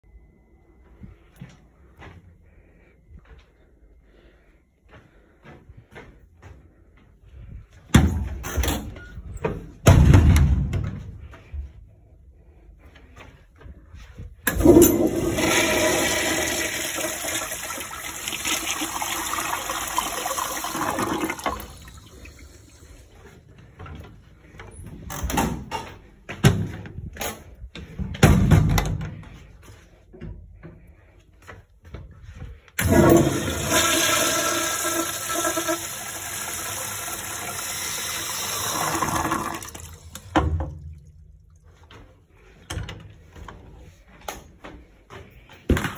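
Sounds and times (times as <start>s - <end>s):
faint whine: 0.0s - 7.4s
toilet flushing: 14.5s - 23.2s, 32.8s - 41.2s.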